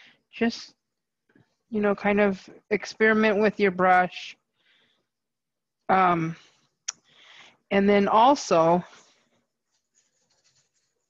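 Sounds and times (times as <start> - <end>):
faint light scratches and ticks: 8.9 - 11.0.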